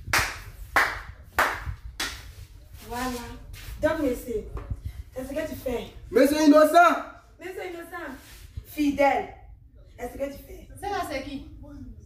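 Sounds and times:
hand clapping with echo: 0.1s - 2.4s.

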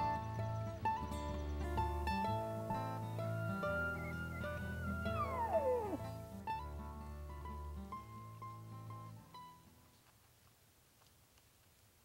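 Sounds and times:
background music: 0.0s - 9.6s
elk bugle whistle: 3.2s - 6.2s.

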